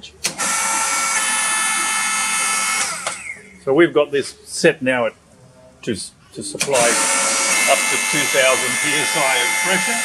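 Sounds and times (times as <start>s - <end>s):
electric motor whining: 0.3s - 3.5s, 6.6s - 10.0s.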